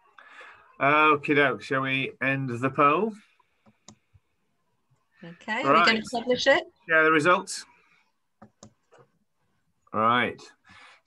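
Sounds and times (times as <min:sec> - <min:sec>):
faint mouse clicks: 0:03.5 - 0:04.2
person speaking: 0:05.6 - 0:06.3.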